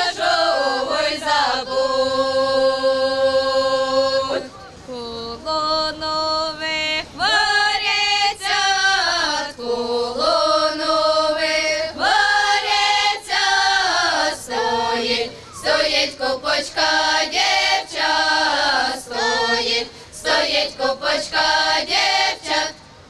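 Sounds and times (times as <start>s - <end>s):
choir singing in harmony: 0.0s - 4.5s, 7.2s - 23.0s.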